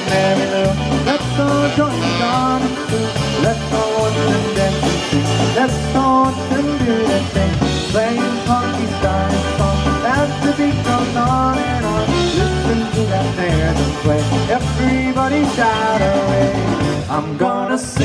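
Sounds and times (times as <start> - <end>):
saxophone: 0.0 - 3.4
steady drum beat: 0.0 - 17.2
accordion: 0.0 - 18.0
polka band playing: 0.0 - 18.0.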